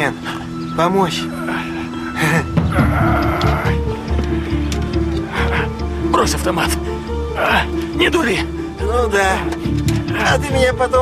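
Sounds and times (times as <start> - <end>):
tense film score: 0.0 - 11.0.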